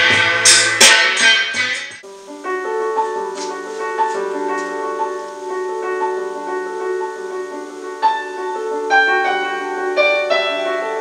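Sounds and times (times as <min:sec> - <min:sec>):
music with drums and cymbals: 0:00.0 - 0:02.0
slow keyboard piece: 0:02.0 - 0:11.0.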